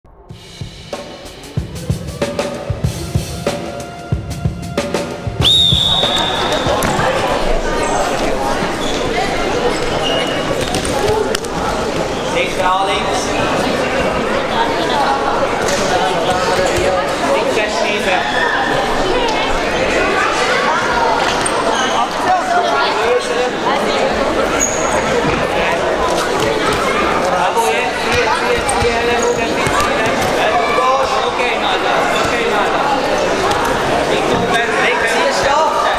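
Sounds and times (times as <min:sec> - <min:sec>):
intro music drum beats: 0:00.2 - 0:06.8
din of voices in sports hall: 0:05.0 - 0:35.9
high whistle blast: 0:05.4 - 0:06.8.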